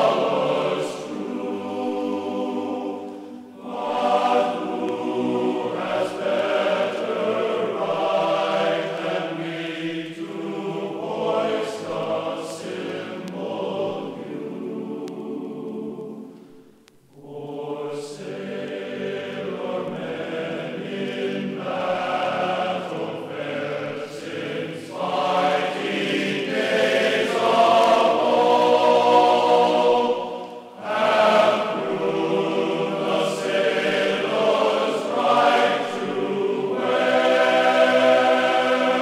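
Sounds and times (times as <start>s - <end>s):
choir singing held chords: 0.0s - 39.0s.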